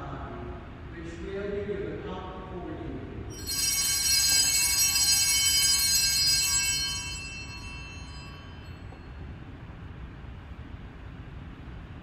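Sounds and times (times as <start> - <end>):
bell ringing: 3.3 - 9.2.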